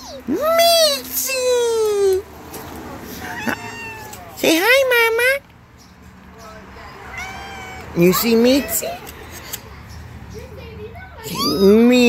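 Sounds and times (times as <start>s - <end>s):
cat meowing: 3.2s - 4.4s, 7.1s - 8.0s.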